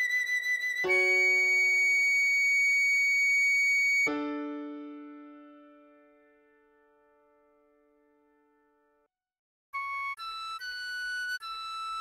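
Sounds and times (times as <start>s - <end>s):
high recorder note: 0.0s - 4.2s
piano chord: 4.1s - 8.4s.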